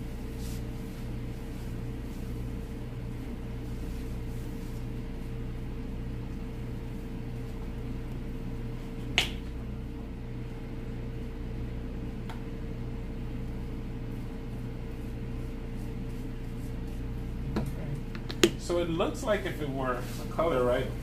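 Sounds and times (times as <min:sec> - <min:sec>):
steady low hum: 0:00.0 - 0:21.0.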